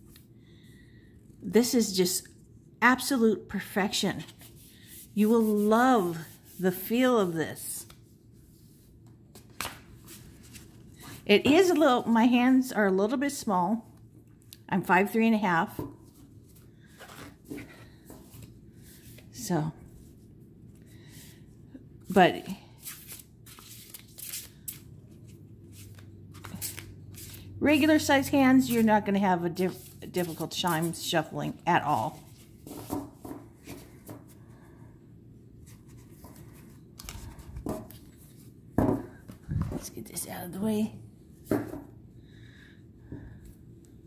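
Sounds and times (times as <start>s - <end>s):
cards being shuffled: 9.3s - 10.8s, 22.8s - 27.5s.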